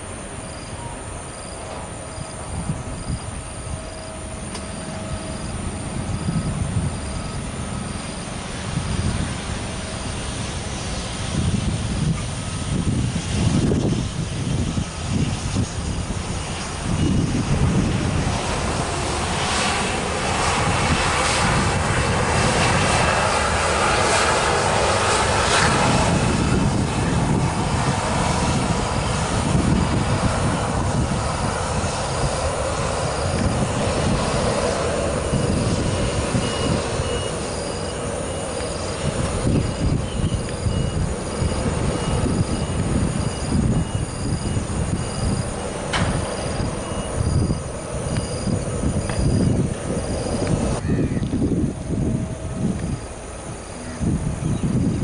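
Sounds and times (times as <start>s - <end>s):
jet engines whining: 0.0s - 55.0s
wind buffeting microphone: 0.0s - 55.0s.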